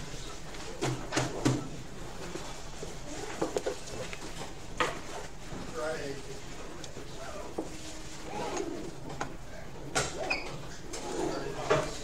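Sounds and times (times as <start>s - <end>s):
indistinct room sounds: 0.0s - 12.0s.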